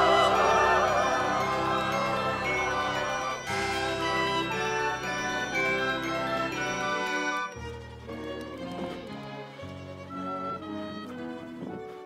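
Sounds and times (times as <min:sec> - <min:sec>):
orchestra loud held chord: 0:00.0 - 0:07.5
sustained string chords: 0:00.0 - 0:11.5.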